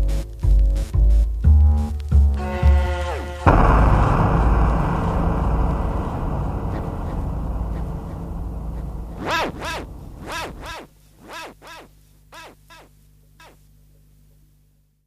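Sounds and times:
low bass: 1.4 - 10.8
loud noise crash: 3.4 - 10.9.

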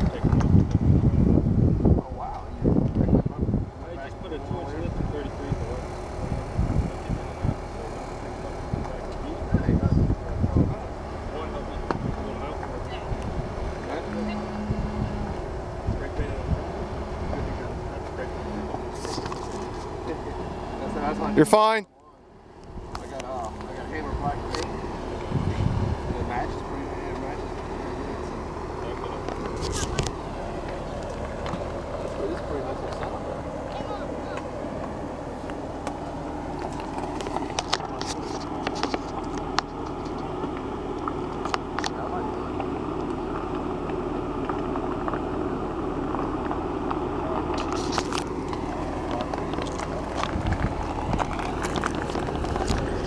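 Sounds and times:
car engine running low: 0.0 - 53.0
faint voices: 1.8 - 53.0
tyres crunching on stones: 22.9 - 53.0.

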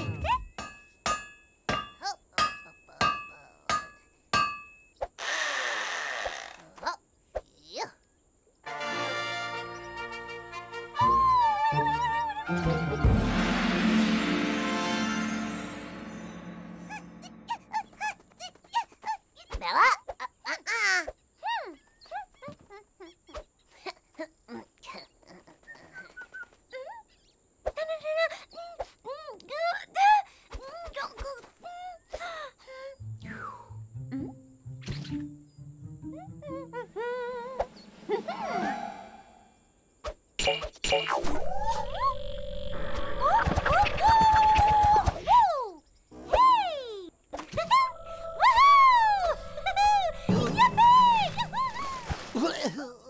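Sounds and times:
cartoon grunts and hums: 23.8 - 26.2, 52.4 - 53.0.

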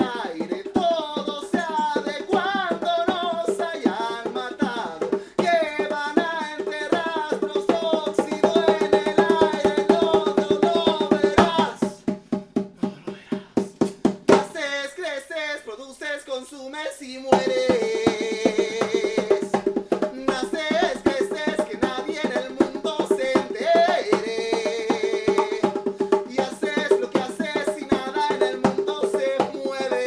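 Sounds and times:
man singing into a microphone: 0.0 - 12.0, 14.3 - 30.0
hand drum beating: 0.0 - 14.6, 17.3 - 30.0.

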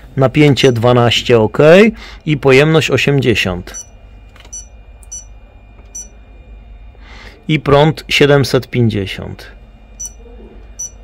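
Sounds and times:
high-pitched key-press beeps: 3.7 - 3.9, 4.5 - 5.3, 5.9 - 6.1, 10.0 - 10.2, 10.8 - 11.0.

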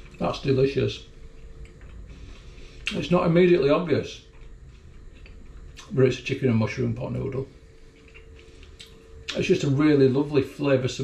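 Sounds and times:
low steady hum: 0.0 - 11.0
man chewing bread: 1.1 - 3.0, 4.2 - 6.0, 7.6 - 9.4.

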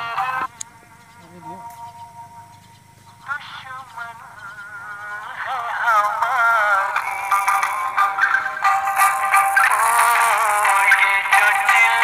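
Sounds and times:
melody with strong vibrato: 1.2 - 12.0.

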